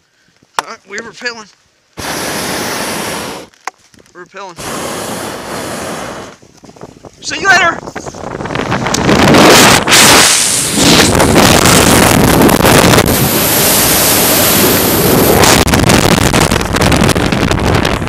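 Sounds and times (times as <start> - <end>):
wind blasting microphone: 2.0 - 18.0.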